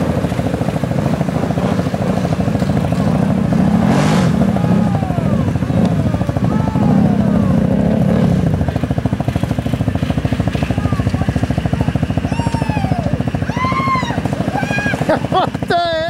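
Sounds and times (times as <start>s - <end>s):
quad bike engine pulsing: 0.0s - 16.0s.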